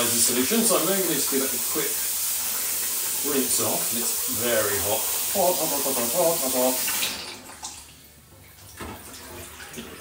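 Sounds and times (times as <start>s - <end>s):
tap water running into saucepan: 0.0s - 8.0s.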